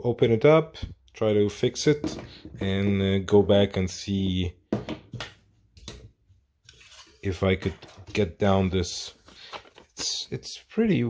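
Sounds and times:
paper rustling: 6.7s - 10.5s.

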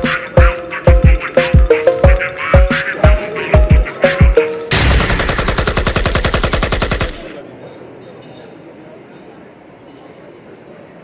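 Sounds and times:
hip-hop track with bass kicks: 0.0s - 4.6s
faint hall noise: 2.4s - 11.0s
machine-gun sound effect: 4.7s - 7.4s.

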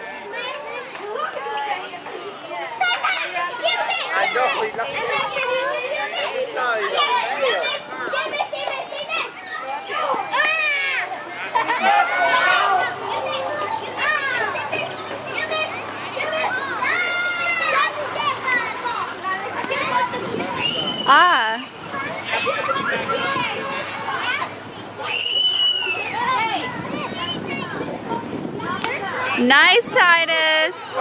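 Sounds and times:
adult voices: 0.0s - 31.0s
children calling and shouting: 0.0s - 31.0s.

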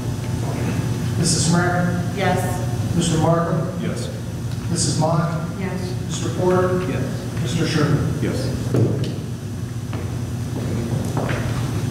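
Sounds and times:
low room hum: 0.0s - 11.9s.

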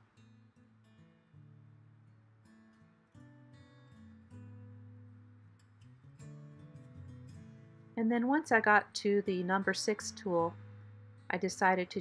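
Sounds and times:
acoustic guitar plucking: 0.0s - 8.5s, 9.6s - 11.3s.

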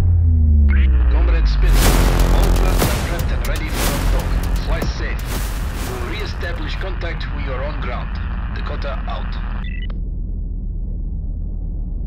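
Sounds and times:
deep boom: 0.0s - 7.4s
film score music: 0.0s - 12.0s
low rumble with sliding tones: 0.0s - 12.0s.

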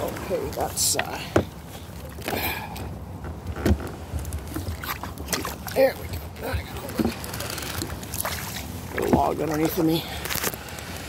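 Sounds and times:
kayak hull knocking and scraping: 0.0s - 10.8s
paddle splashes: 0.0s - 11.0s.

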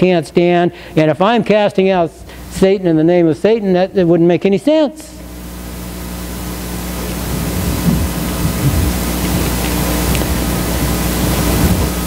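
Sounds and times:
low electrical hum: 0.0s - 12.0s
recording hiss: 0.0s - 12.0s.

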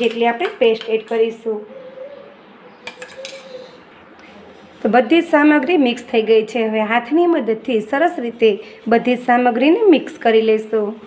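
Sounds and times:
metal spoon clinking on steel cup: 2.9s - 3.6s.

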